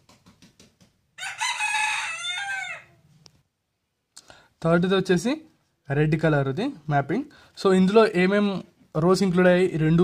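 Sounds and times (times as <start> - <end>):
rooster crowing: 1.2 - 3.1.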